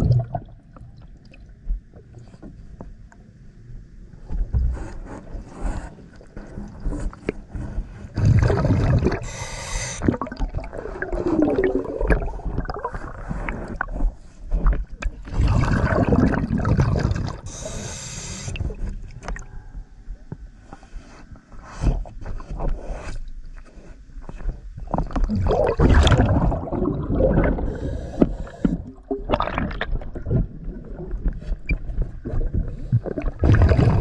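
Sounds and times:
gurgling underwater: 0.0 - 0.6, 8.1 - 9.4, 10.0 - 17.6, 24.9 - 34.0
rush of exhaled bubbles: 0.0 - 0.6, 8.1 - 9.4, 10.0 - 14.2, 15.2 - 17.7, 25.0 - 34.0
diver breathing through regulator: 4.7 - 10.1, 17.3 - 19.8, 27.1 - 29.0.

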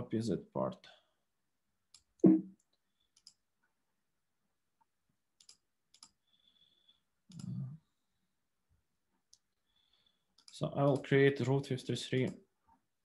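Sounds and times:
computer clicks: 1.9 - 3.4, 5.4 - 6.2, 10.3 - 11.2.

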